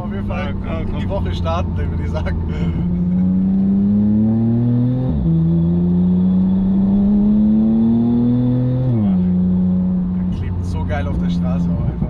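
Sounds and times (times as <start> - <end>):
car engine accelerating: 0.0 - 12.0.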